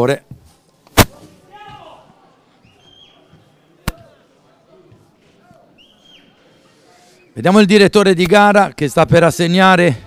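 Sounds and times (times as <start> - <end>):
faint shouts of players: 1.1 - 6.6.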